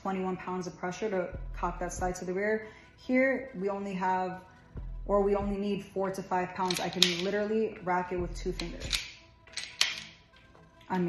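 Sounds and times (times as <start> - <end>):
pistol slide metallic clicks: 6.6 - 7.4, 8.6 - 10.2.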